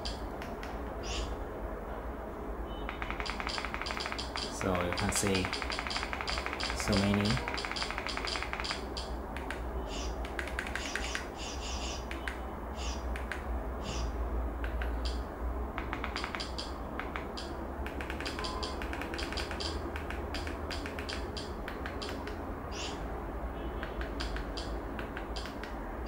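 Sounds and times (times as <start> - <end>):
short sharp clicks: 2.9 - 9.6, 15.8 - 22.4.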